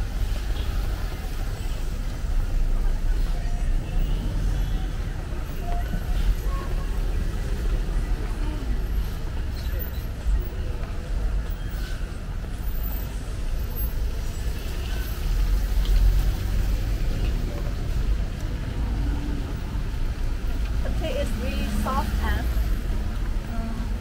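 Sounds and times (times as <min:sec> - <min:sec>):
traffic rumble: 0:00.0 - 0:24.0
tyres hissing on wet road: 0:11.7 - 0:23.7.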